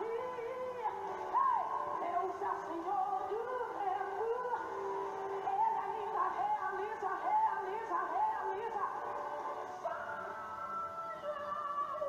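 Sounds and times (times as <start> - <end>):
gospel song: 0.0 - 12.0
woman singing: 0.0 - 12.0.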